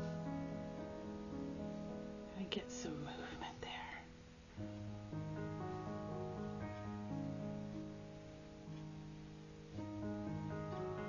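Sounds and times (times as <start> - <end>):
soft background music: 0.0 - 11.0
whispered voice: 2.4 - 4.1.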